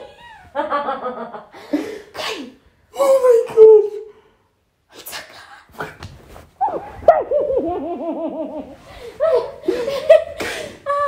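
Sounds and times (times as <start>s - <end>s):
excited high-pitched laughter: 6.7s - 11.0s.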